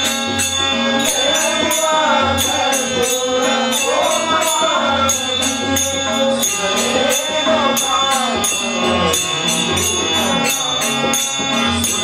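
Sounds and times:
held instrumental tones: 0.0s - 12.0s
man singing into microphone: 1.0s - 12.0s.

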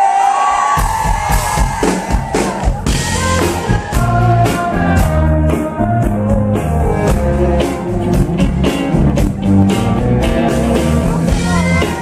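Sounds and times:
audience cheering and whooping: 0.0s - 4.5s
live band playing: 0.0s - 12.0s
drums and bass: 0.6s - 12.0s.

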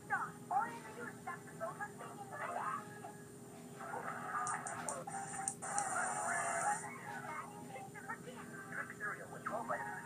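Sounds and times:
commercial music on television: 0.0s - 10.0s.

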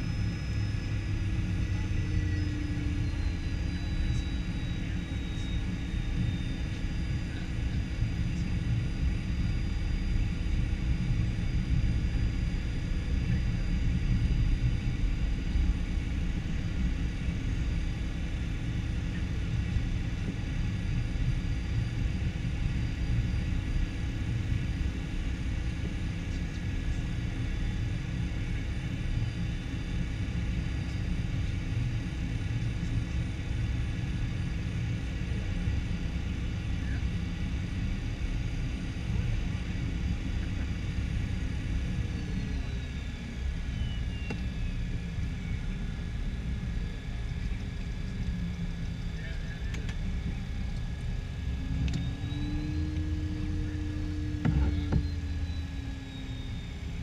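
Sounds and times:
jet engines whining: 0.0s - 57.0s.

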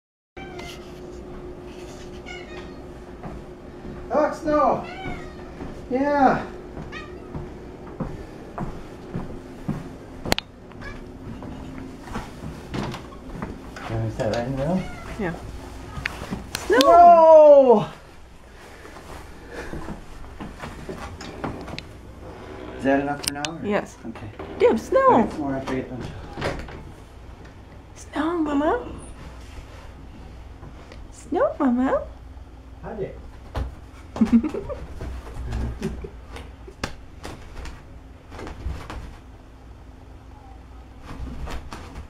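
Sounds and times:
cat meowing: 0.4s - 0.8s, 2.2s - 2.9s, 4.8s - 5.7s, 6.9s - 7.4s, 14.6s - 16.1s
low hum: 0.4s - 42.0s.

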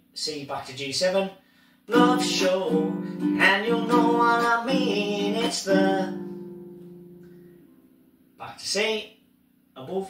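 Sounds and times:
strummed ukulele chord: 1.9s - 7.8s.

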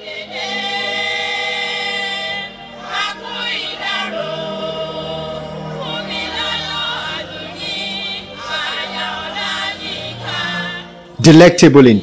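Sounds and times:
women singing together: 0.0s - 11.0s.

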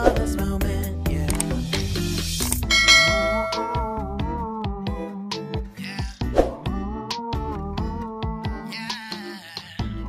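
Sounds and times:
background pop music: 0.0s - 10.0s
bell chime ringing: 2.6s - 4.1s.

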